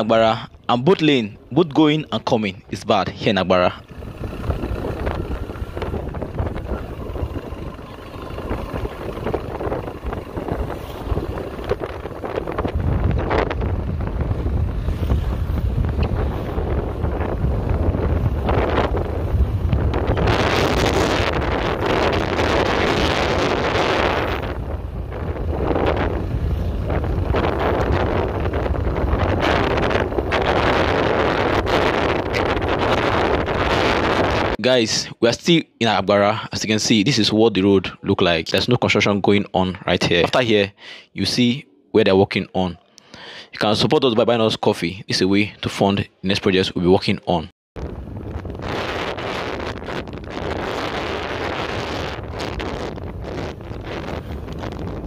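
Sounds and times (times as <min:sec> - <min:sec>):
road noise from moving vehicle: 0:00.0 - 0:34.6, 0:47.8 - 0:55.0
wind buffeting microphone: 0:02.6 - 0:34.6, 0:47.8 - 0:55.0.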